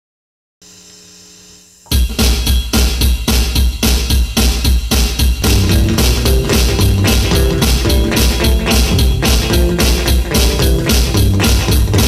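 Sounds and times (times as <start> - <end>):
backing track drum beat: 1.9 - 12.0
electric guitar playing: 5.4 - 12.0.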